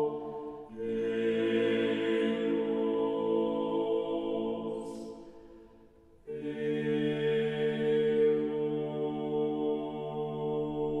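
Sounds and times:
vocal ensemble chanting: 0.0s - 11.0s.

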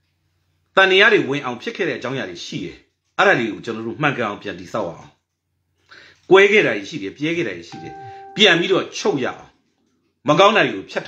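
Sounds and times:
man talking: 6.3s - 9.5s
short electronic beep: 7.8s - 8.7s.

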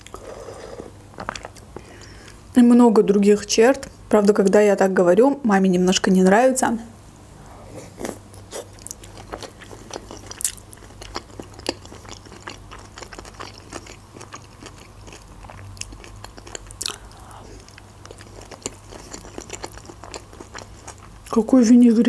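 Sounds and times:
person chewing food: 0.0s - 2.5s, 7.6s - 21.3s.

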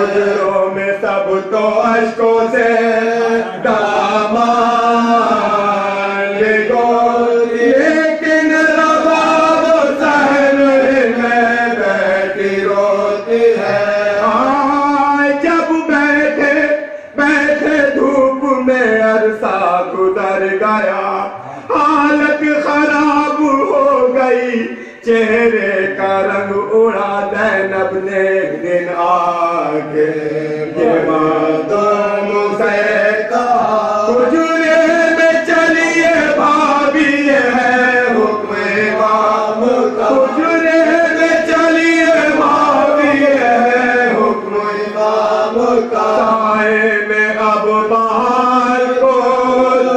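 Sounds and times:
men chanting an elegy: 0.0s - 49.9s
man chanting an elegy: 30.8s - 48.8s.

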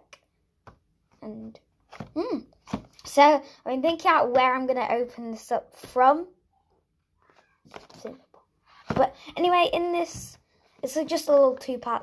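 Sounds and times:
person speaking: 7.8s - 8.3s, 8.9s - 12.0s.

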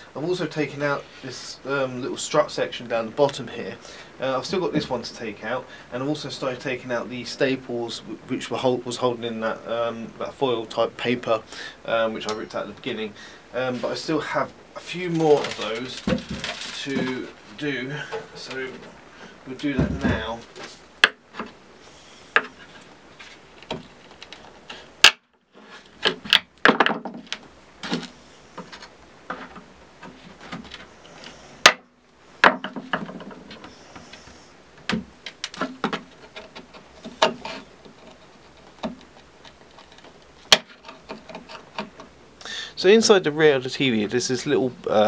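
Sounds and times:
blade scraping against wood: 35.5s - 42.0s.

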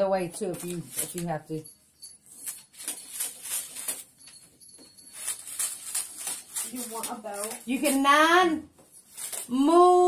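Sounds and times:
wrapping paper crinkling: 0.4s - 1.6s, 2.2s - 10.0s.

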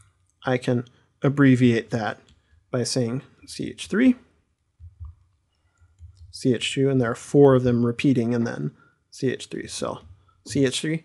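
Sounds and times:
person speaking: 0.4s - 5.1s, 6.0s - 11.0s
stylus tapping on pen tablet: 4.8s - 6.4s.

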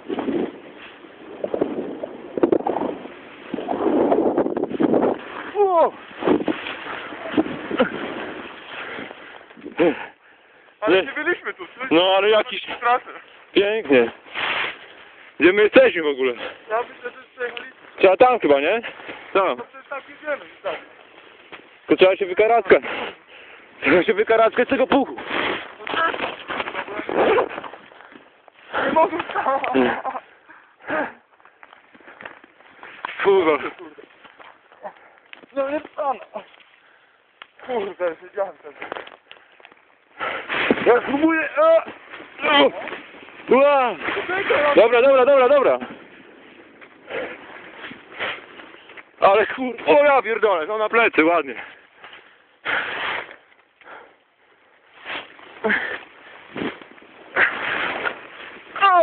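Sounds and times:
snowboard swishing through snow: 0.0s - 9.4s, 13.7s - 15.4s, 16.2s - 27.8s, 40.3s - 50.2s, 52.1s - 53.5s, 54.9s - 59.0s
wind buffeting microphone: 0.0s - 10.0s.

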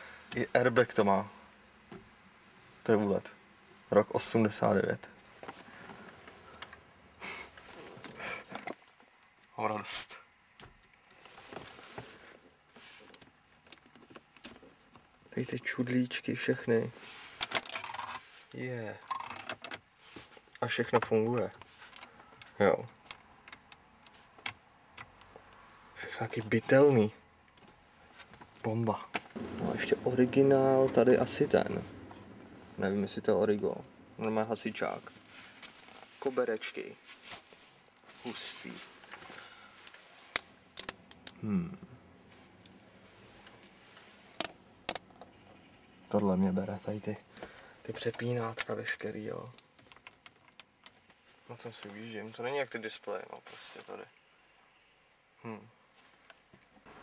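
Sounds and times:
faint rustling: 4.3s - 15.4s, 16.4s - 24.4s, 25.3s - 40.6s.

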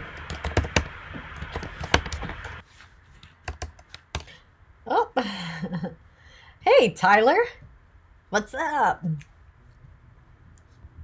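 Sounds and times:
computer keyboard typing: 0.2s - 2.6s, 3.4s - 4.3s.

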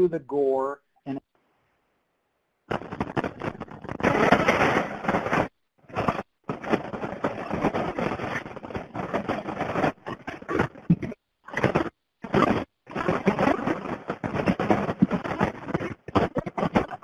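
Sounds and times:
loud rough noise: 2.7s - 17.0s
pops and bangs: 2.7s - 17.0s.

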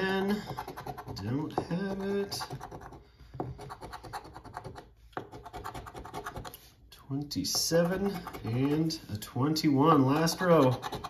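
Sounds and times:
coin scratching a lottery ticket: 10.2s - 11.0s.

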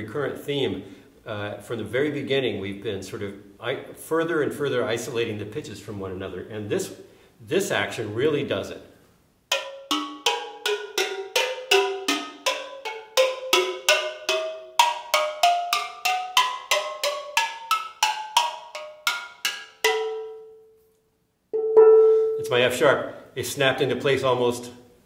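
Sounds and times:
steel pan notes struck with stick: 9.5s - 20.8s, 21.6s - 22.6s.

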